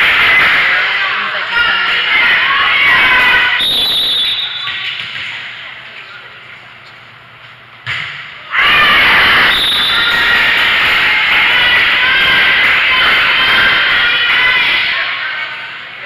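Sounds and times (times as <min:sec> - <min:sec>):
crowd cheering and yelling: 0:00.0 - 0:04.9, 0:08.4 - 0:16.0.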